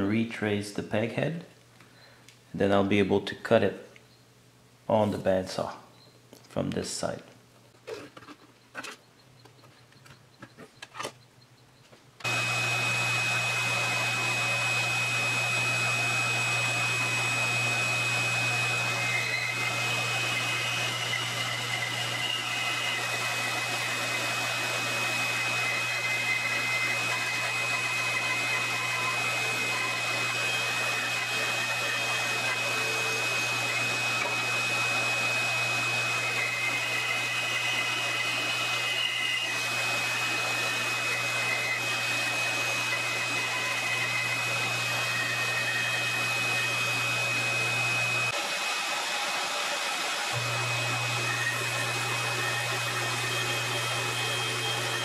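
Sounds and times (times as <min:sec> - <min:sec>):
bandsaw cutting wood: 0:12.2 - 0:55.0.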